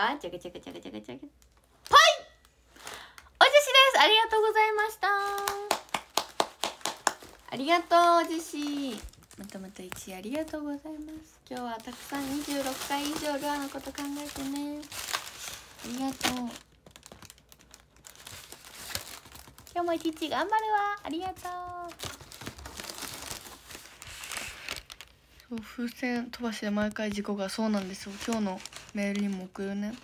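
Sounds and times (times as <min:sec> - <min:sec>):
foil balloons crinkling: 0:00.4 - 0:30.0
foil crackle: 0:05.1 - 0:30.0
hands clapping quickly: 0:05.4 - 0:07.4.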